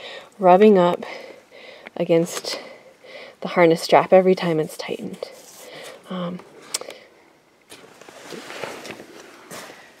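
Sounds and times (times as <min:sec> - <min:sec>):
hands rustling seat belt and fabric: 0:07.7 - 0:10.0.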